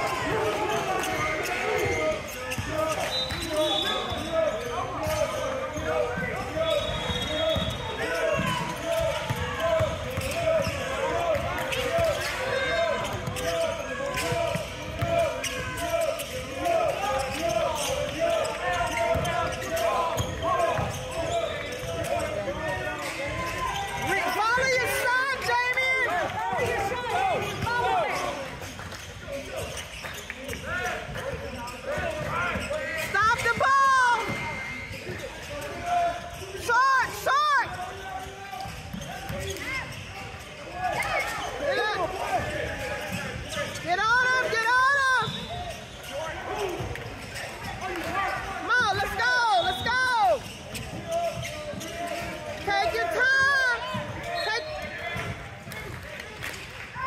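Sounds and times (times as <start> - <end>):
players calling out: 0.0 - 56.2
sneakers squeaking: 0.0 - 57.0.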